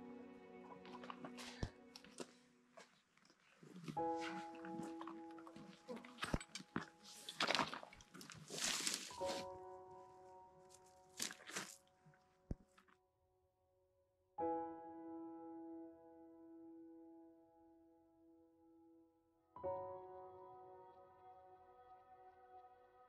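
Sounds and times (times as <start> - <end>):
footsteps on rocky path: 0.8 - 9.5, 10.7 - 11.9
slow keyboard chords: 3.7 - 7.3
fabric swishing: 7.0 - 9.5.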